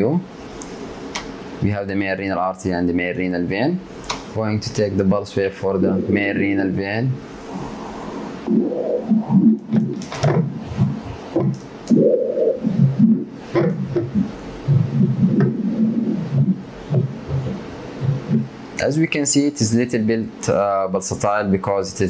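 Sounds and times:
doppler ultrasound whooshing flow: 5.0 - 19.6.

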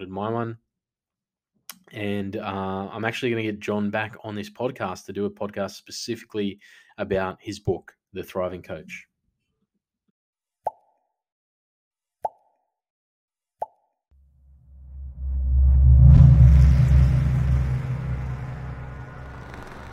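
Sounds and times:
deep rumbling swell: 14.4 - 19.9.

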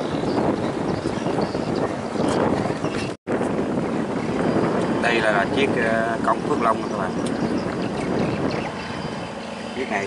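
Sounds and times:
barge engine running: 0.0 - 10.0
water rushing along hull: 0.0 - 10.0.

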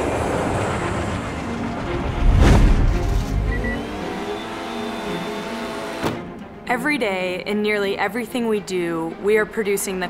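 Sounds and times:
leaf blower engine running: 3.5 - 6.1.

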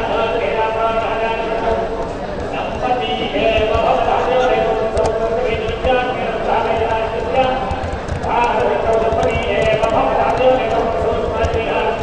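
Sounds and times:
man chanting: 2.6 - 12.0.

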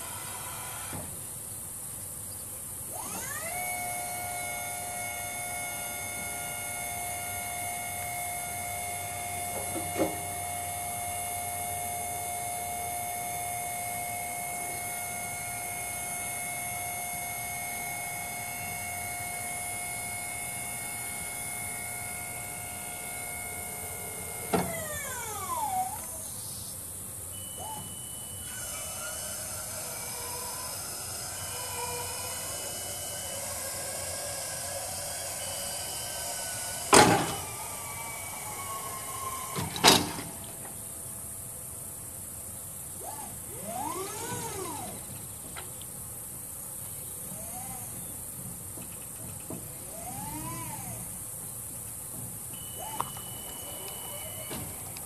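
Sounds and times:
hydraulic pump whining: 0.0 - 2.0, 2.8 - 55.0.

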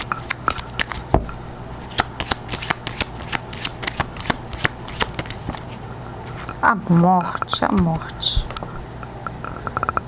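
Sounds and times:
cards being shuffled: 0.0 - 6.6.

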